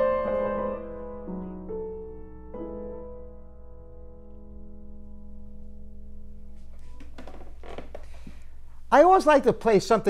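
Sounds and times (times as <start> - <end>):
piano chord ringing: 0.0 - 7.0
man's voice: 8.9 - 10.0.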